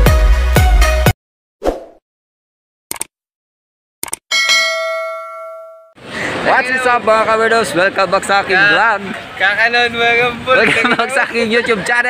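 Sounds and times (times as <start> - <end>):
notification bell chime: 4.3 - 6.0.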